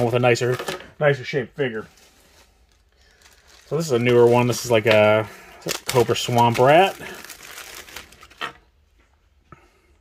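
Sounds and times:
plastic bag crinkling: 0:01.7 - 0:08.8.

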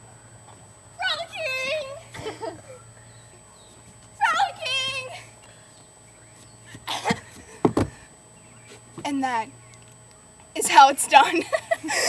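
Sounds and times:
girl squealing and singing: 0:04.2 - 0:05.2.

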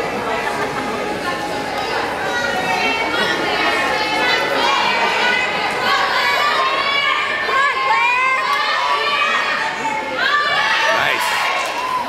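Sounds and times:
crowd shouting and cheering: 0:02.4 - 0:12.0.

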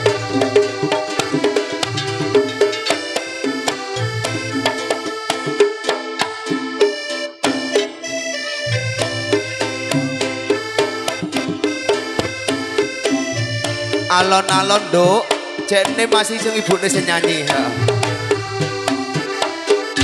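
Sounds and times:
bass line: 0:00.0 - 0:05.6, 0:08.1 - 0:19.4
hand drum strokes: 0:00.0 - 0:06.4, 0:08.7 - 0:20.0
electronic keyboard melody: 0:00.0 - 0:20.0.

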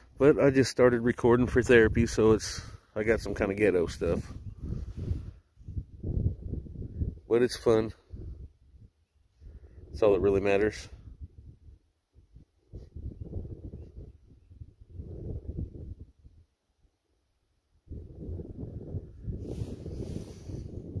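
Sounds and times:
wind buffeting microphone: 0:00.0 - 0:16.5, 0:17.8 - 0:21.0.

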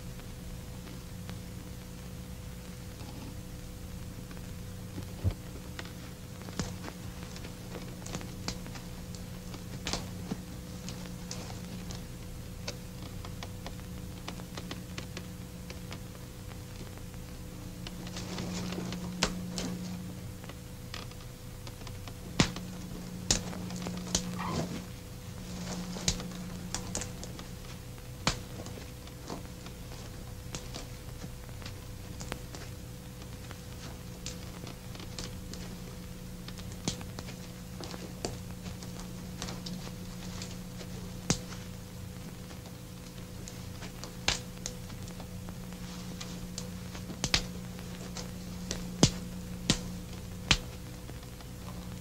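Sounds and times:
low steady hum: 0:00.0 - 0:52.0
sharp clicks and snaps: 0:36.4 - 0:39.7.

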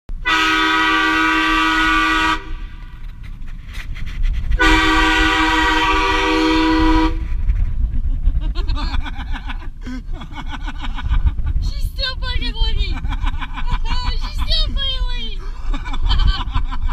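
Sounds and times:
train horn blasts: 0:00.2 - 0:02.8, 0:04.6 - 0:07.4.

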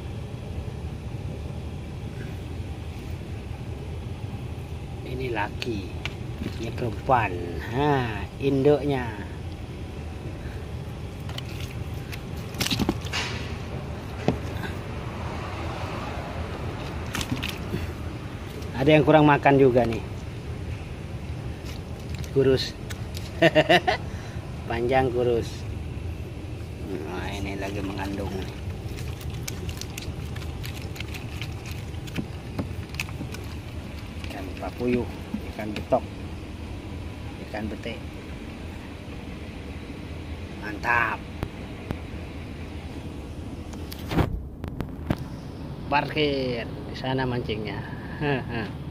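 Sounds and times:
steady low hum: 0:00.0 - 0:48.9
steady low rumble: 0:00.0 - 0:48.9
wet fish shifted by hand: 0:11.1 - 0:14.9, 0:16.5 - 0:18.8, 0:21.4 - 0:23.5, 0:27.3 - 0:36.0.

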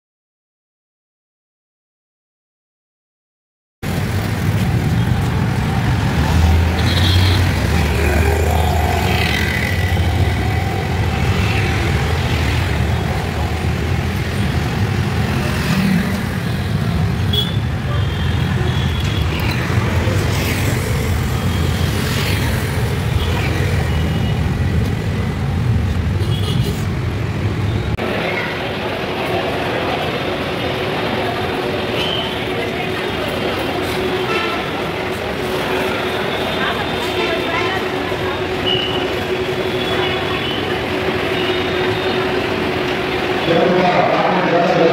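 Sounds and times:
traffic rumble: 0:03.8 - 0:44.9.

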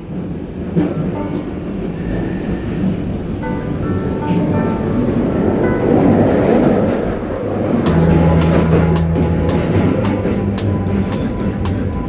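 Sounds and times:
underground train rumble and rattle: 0:00.0 - 0:12.0
music with bass and beat: 0:07.9 - 0:12.0.

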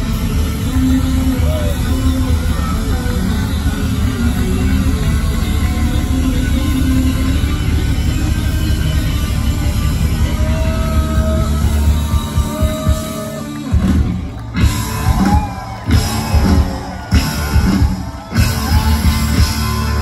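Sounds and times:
punk rock band playing loud: 0:00.0 - 0:20.0.

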